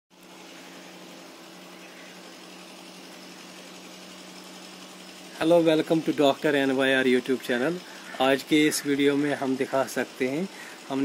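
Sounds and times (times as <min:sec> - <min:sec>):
machine hum: 0:00.1 - 0:11.0.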